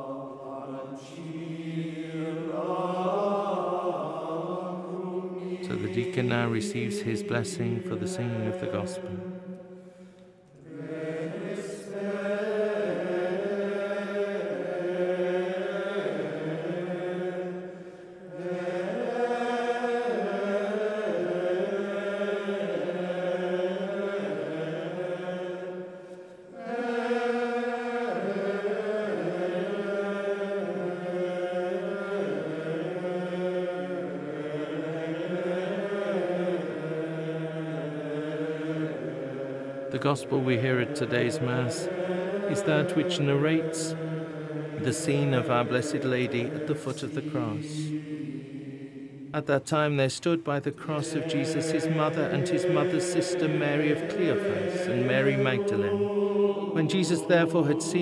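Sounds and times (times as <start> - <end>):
plainchant singing in reverberant hall: 0.0 - 58.0.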